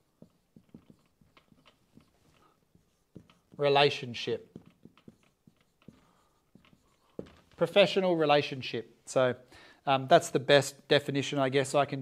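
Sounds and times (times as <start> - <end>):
marker pen squeaking on whiteboard: 0.0 - 8.0.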